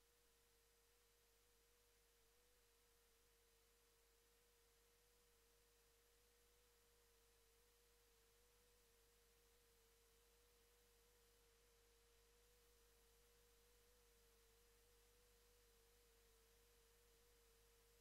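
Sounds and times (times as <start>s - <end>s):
faint steady tone: 0.0s - 18.0s.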